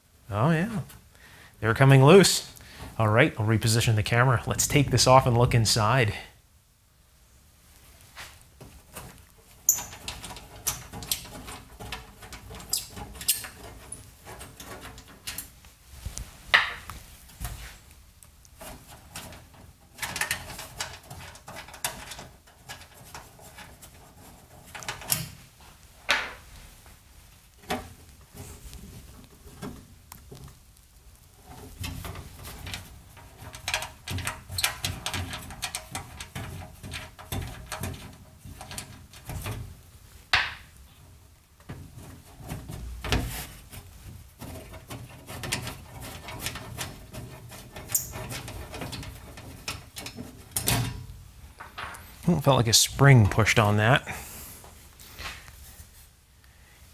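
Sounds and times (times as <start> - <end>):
clicks scrapes and rubbing: 8.0 - 25.4, 41.6 - 51.2.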